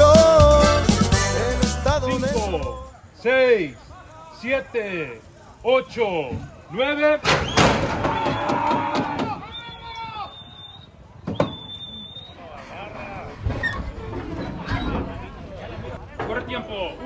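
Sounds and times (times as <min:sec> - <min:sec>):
men yelling high calls: 0:07.9 - 0:10.5.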